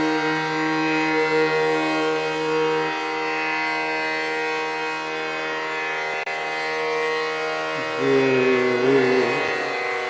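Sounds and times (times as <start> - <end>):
tanpura drone: 0.0 - 10.0.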